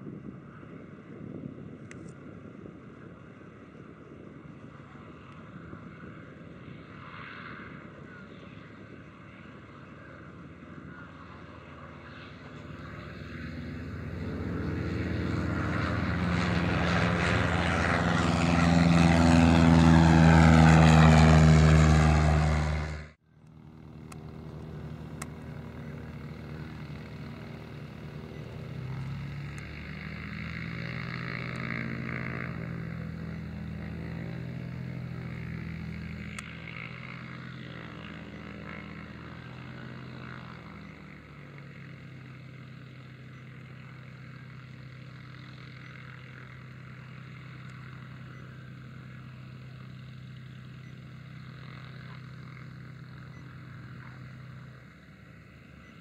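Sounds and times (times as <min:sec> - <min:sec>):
distant propeller plane drone: 0:00.0 - 0:56.0
light plane engine at takeoff power: 0:00.0 - 0:56.0.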